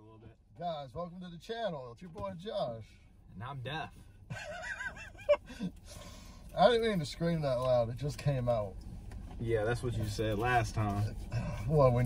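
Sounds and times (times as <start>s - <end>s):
man giggling: 4.3s - 5.8s.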